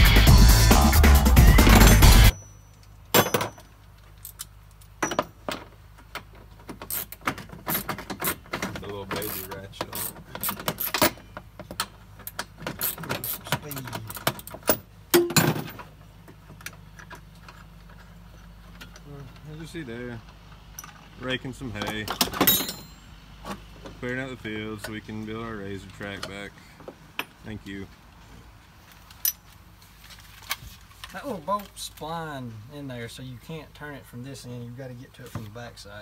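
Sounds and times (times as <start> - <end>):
music: 0.0 - 2.3
hand tools clicking and knocking on metal: 1.6 - 19.5, 21.7 - 24.0, 25.9 - 27.4.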